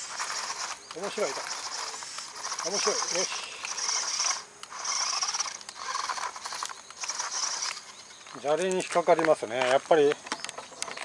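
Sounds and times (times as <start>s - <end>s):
stones crunching and rattling: 0.0s - 11.0s
toy car motor whirring: 0.0s - 11.0s.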